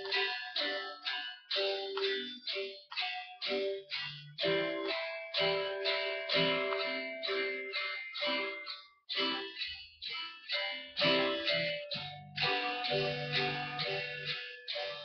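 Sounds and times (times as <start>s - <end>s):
electric guitar picked notes: 0.0s - 15.0s.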